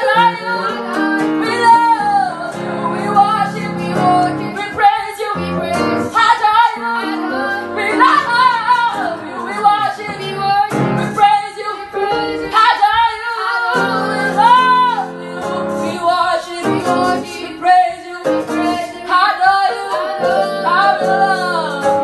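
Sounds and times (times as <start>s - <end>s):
boy singing unaccompanied: 0.0s - 22.0s.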